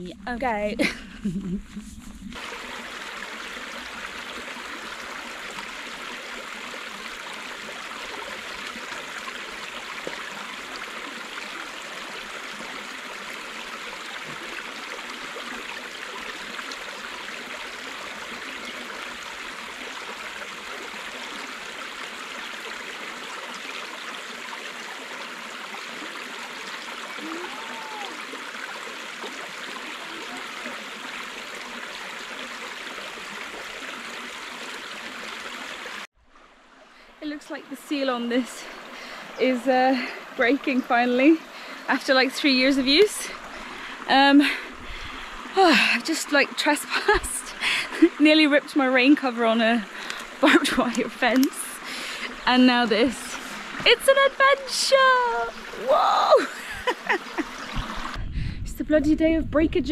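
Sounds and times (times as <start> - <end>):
stream trickling over stones: 0.0 - 58.2.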